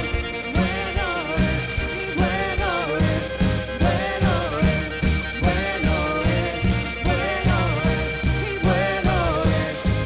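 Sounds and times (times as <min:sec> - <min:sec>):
bowed violin melody: 0:00.0 - 0:10.0
drum kit: 0:00.0 - 0:10.0
electric bass: 0:00.0 - 0:10.0.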